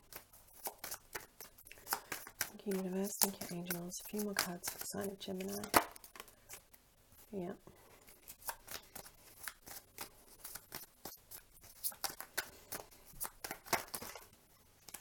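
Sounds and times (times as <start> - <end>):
cards being shuffled: 0.0 - 6.8, 8.1 - 15.0.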